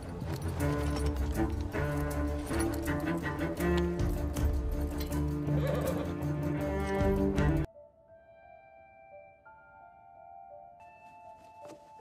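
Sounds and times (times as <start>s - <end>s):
low bowed strings: 0.0s - 7.7s.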